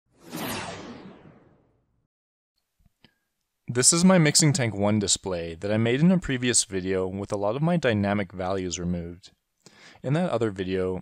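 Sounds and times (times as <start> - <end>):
whoosh sound effect: 0.1 - 1.8.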